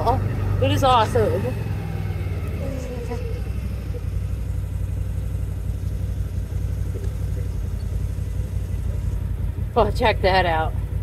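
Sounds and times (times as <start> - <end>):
utility vehicle engine running: 0.0 - 11.0.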